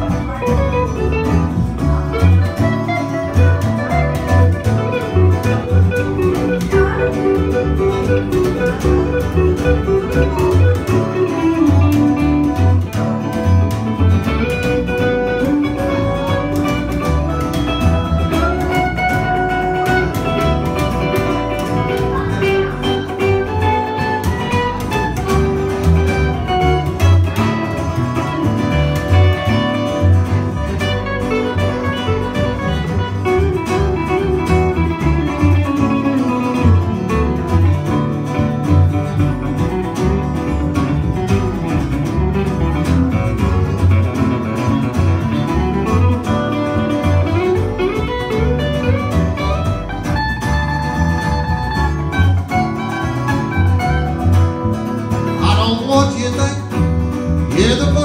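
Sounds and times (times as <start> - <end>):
guitar melody: 0.0 - 58.0
plucked upright bass: 0.0 - 58.0
strummed rhythm guitar: 0.0 - 58.0.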